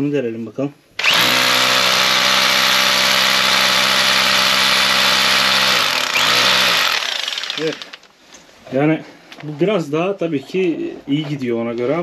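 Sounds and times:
hammer drill boring into concrete: 1.0 - 8.1.

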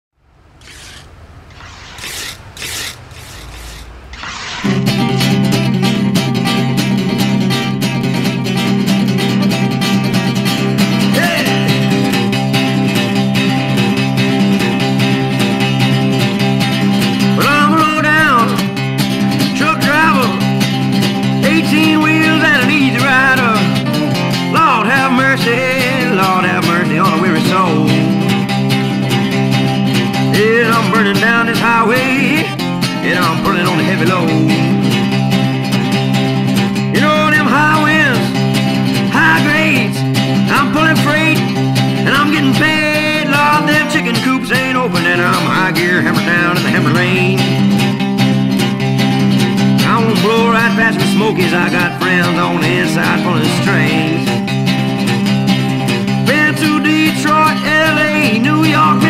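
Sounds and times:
gliding high guitar notes: 0.4 - 56.3
electric guitar riff: 0.6 - 59.0.

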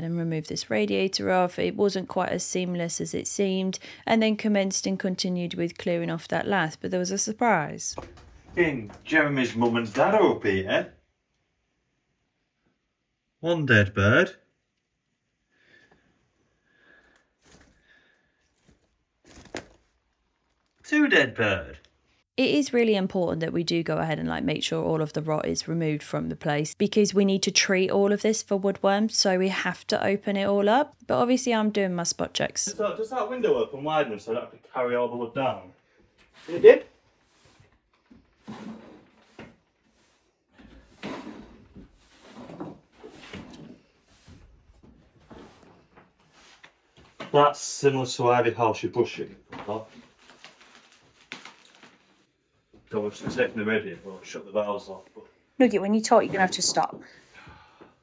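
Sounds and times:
broom sweeping floor: 36.2 - 47.5, 52.9 - 55.3, 55.9 - 57.5.

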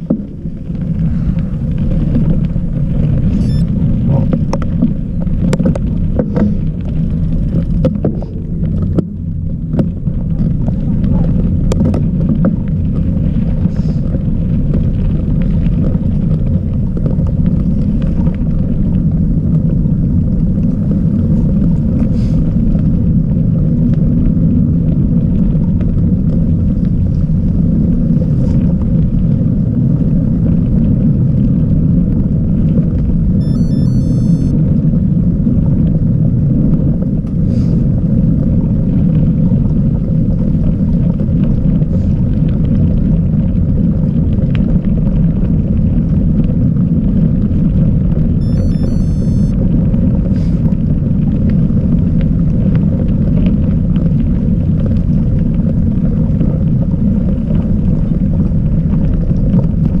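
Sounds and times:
bike tyres rolling on dirt: 0.0 - 33.4, 37.8 - 48.4, 49.8 - 60.0.

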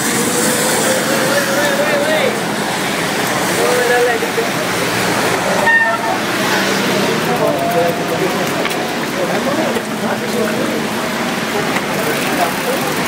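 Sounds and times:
bicycle on wet road: 0.0 - 13.0
people calling: 0.0 - 13.0.

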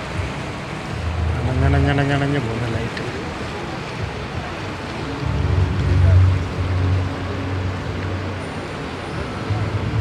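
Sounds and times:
faint voices: 0.3 - 10.0
low rumble: 5.2 - 8.2.

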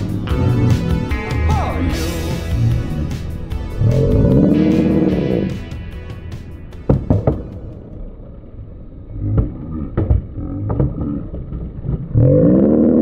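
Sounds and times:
city street traffic: 0.0 - 10.6
man yelling: 1.3 - 2.4
sharp knocks: 6.8 - 7.7.

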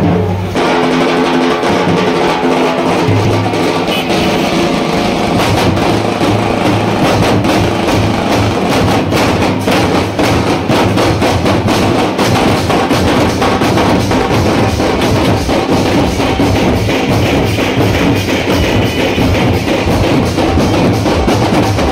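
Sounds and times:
drums beating fast rhythm: 0.0 - 21.9.

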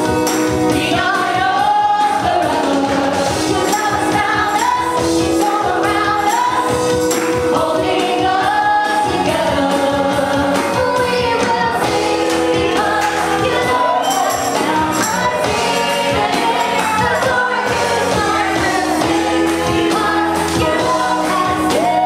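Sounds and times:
tambourine beat: 0.0 - 22.0
women singing gospel in harmony: 0.0 - 22.0.

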